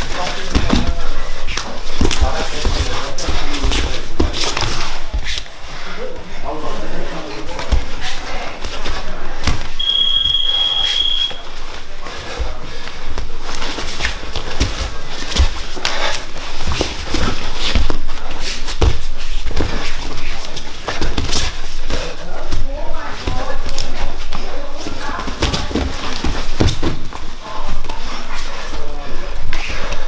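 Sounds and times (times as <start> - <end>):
high-pitched electronic beep: 9.8 - 11.4
thuds and scuffing on mats: 12.4 - 22.6, 25.0 - 27.3.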